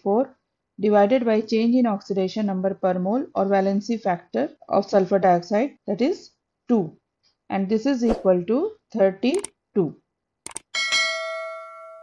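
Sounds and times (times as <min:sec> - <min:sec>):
quick clicks: 0:09.4 - 0:09.6, 0:10.5 - 0:10.7
bright bell ding: 0:10.7 - 0:12.0.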